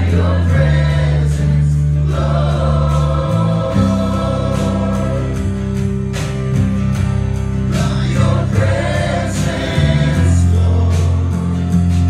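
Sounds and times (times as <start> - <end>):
singers with band: 0.0 - 5.9, 7.7 - 12.0
sustained low bass notes: 0.0 - 12.0.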